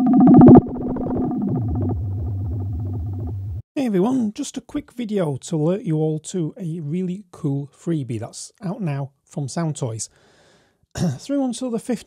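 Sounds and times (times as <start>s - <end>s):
pulsing low synth bass: 0.0s - 3.6s
sustained synth tone: 0.0s - 3.6s.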